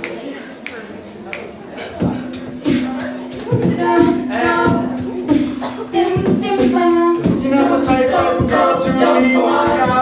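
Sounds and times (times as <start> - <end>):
finger snaps: 0.0 - 1.5.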